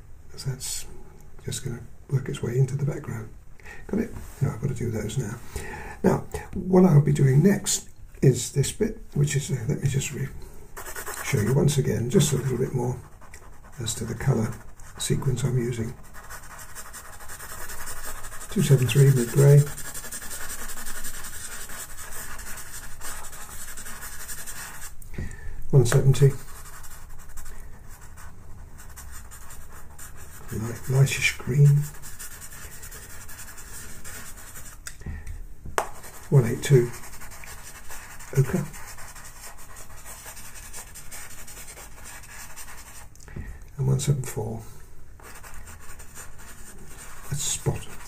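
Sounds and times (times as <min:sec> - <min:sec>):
pencil scratching on paper: 0:10.8 - 0:25.0, 0:25.9 - 0:34.8, 0:35.8 - 0:43.1, 0:45.2 - 0:48.0.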